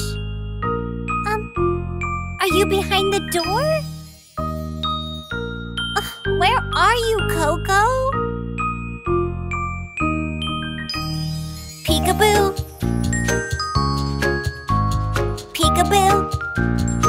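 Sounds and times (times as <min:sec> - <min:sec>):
chiming bell-like tones: 0:00.0 - 0:15.0.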